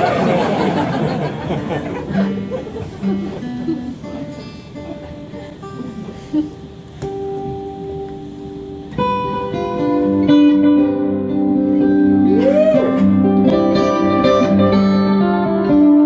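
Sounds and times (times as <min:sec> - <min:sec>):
acoustic guitar picking: 0:00.0 - 0:16.0.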